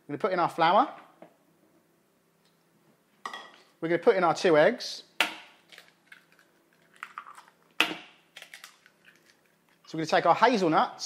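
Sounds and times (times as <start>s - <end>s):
egg cracking on bowl rim: 5.2s - 9.9s.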